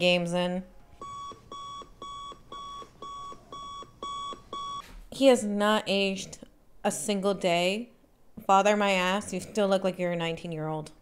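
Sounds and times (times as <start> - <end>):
alarm clock beeping: 1.0 - 4.8.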